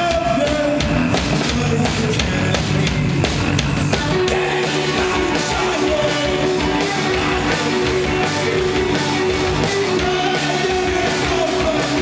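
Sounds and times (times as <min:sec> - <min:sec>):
drum kit: 0:00.0 - 0:12.0
electric guitar: 0:00.0 - 0:12.0
rock band playing loudly: 0:00.0 - 0:12.0.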